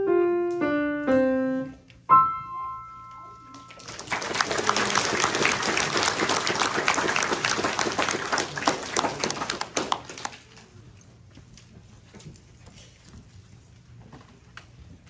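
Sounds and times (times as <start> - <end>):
piano chord ringing: 0.0 - 3.8
audience applauding: 3.8 - 10.7.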